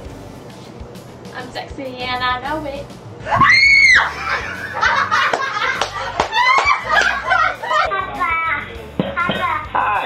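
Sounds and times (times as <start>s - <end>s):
music: 0.0s - 10.0s
people shrieking and laughing: 3.2s - 8.1s.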